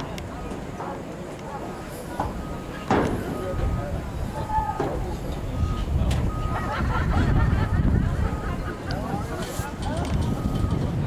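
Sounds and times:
wind rumbling on microphone: 2.3 - 11.0.

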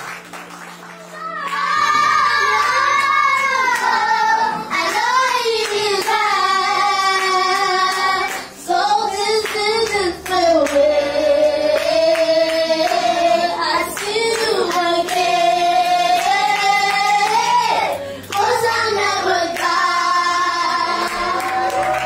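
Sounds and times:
children singing long held notes: 1.1 - 22.0.

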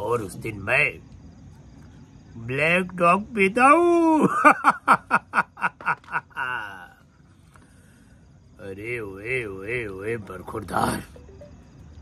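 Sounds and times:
man laughing theatrically: 4.2 - 6.9.

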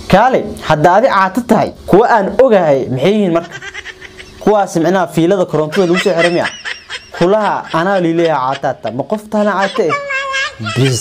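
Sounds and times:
young man talking animatedly: 4.4 - 11.0.

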